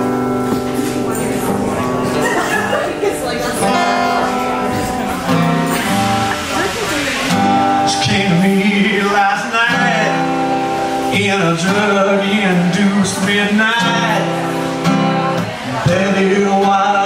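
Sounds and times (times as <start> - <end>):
strummed acoustic guitar: 0.0 - 17.0.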